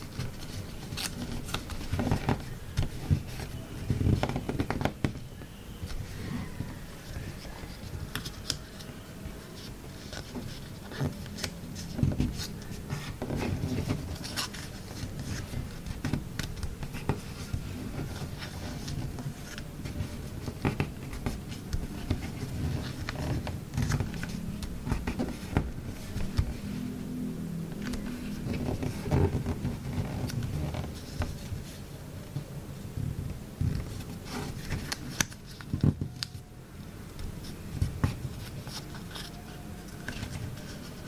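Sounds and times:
paper rustling: 0:00.0 - 0:26.9, 0:33.2 - 0:36.5, 0:37.2 - 0:41.0.

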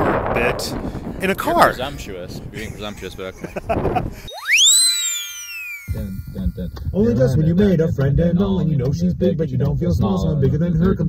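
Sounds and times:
whistle-like sweeping tone: 0:04.3 - 0:07.0.

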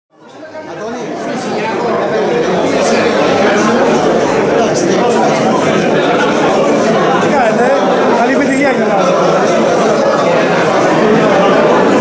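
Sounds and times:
crowd chatter: 0:00.1 - 0:12.0.

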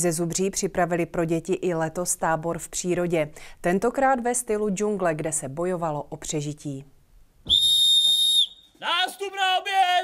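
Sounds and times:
whistle blown: 0:07.4 - 0:08.8
man shouting: 0:08.8 - 0:10.0.

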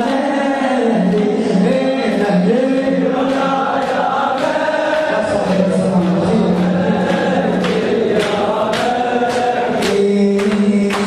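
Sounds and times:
men chanting in unison: 0:00.0 - 0:11.0
hands slapping bare chests: 0:03.2 - 0:11.0.

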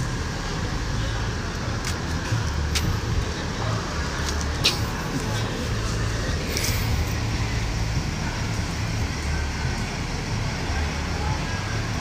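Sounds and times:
buses idling: 0:00.0 - 0:12.0.

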